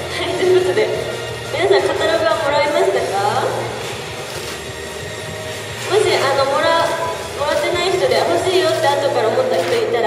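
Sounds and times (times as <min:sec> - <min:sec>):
woman's voice: 0:00.1 - 0:03.7, 0:05.8 - 0:10.0.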